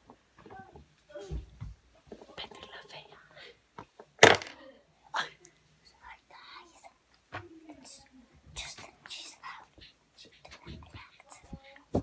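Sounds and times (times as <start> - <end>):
person whispering: 2.3 - 3.6, 5.1 - 7.0, 7.6 - 11.9.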